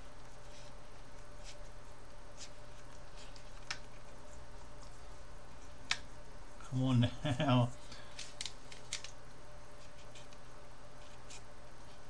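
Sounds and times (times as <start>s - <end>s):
steady low hum: 0.0s - 12.0s
plastic model clicks and crackles: 8.1s - 9.2s.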